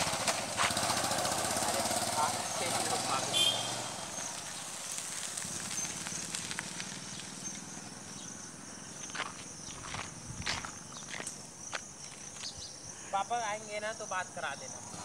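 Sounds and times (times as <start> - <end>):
distant motorcycle engine hum: 0.0 - 15.0
insects calling: 0.0 - 15.0.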